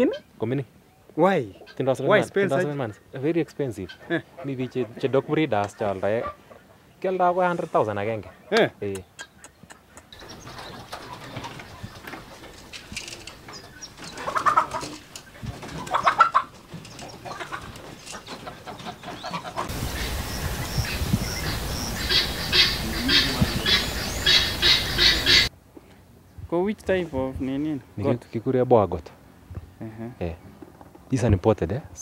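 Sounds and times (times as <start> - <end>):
poultry calling: 9.2 - 25.5.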